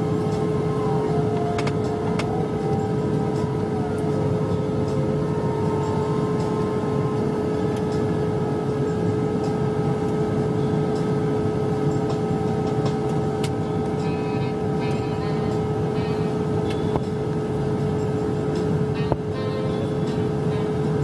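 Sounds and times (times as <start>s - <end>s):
constant hum: 0.0s - 21.0s.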